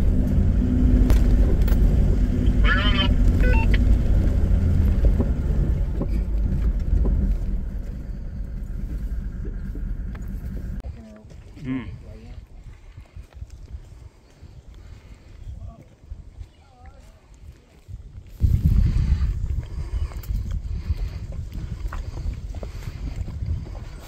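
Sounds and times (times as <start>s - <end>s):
wind buffeting microphone: 0.0s - 24.0s.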